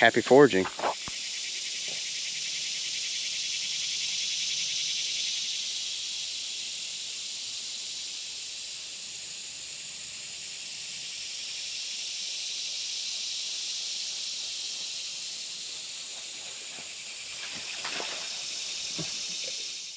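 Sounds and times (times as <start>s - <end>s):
insect chorus buzzing drone: 0.0s - 19.9s.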